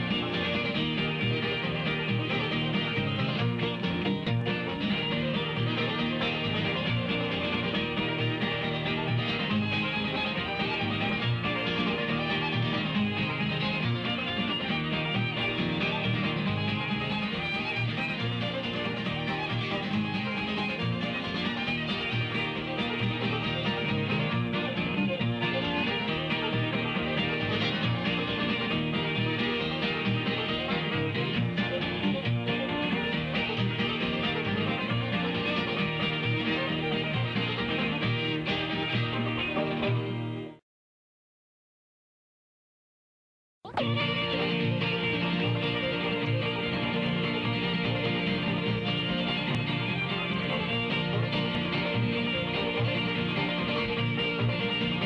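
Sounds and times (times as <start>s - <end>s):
bluegrass string band playing: 0.0s - 40.6s, 43.7s - 55.0s.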